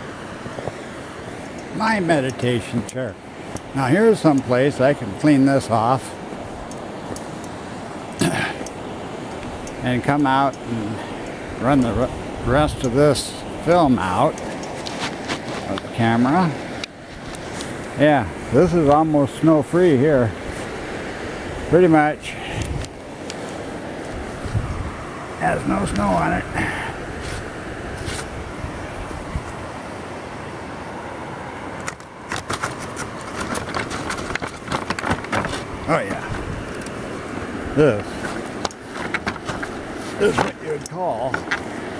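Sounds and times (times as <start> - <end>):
river rushing over rocks: 0.0 - 41.9
footsteps in snow: 14.4 - 15.8, 27.2 - 28.4.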